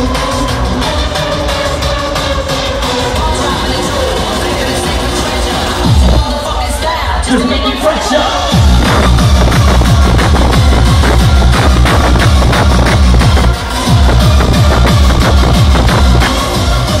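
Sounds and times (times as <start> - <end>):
hardcore techno over sound system: 0.0 - 17.0.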